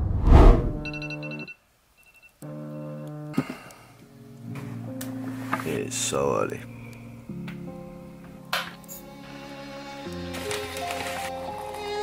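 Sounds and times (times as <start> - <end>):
smartphone alarm chiming: 0.8 - 2.8.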